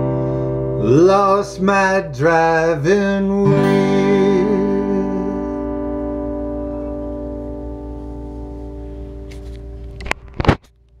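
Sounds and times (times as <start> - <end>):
acoustic guitar chord ringing: 0.0 - 10.4.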